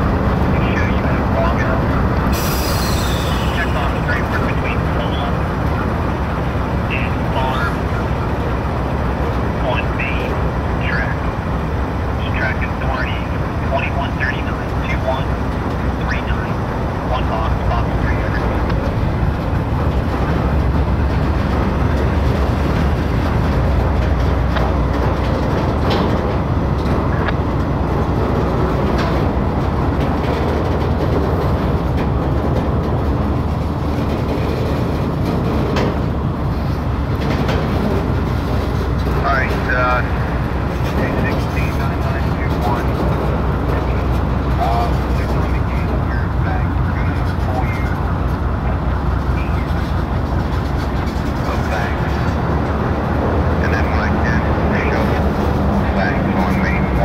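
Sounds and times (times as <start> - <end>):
freight train wheels rumbling on rail: 0.0 - 57.0
train cars rattling and clattering: 0.0 - 57.0.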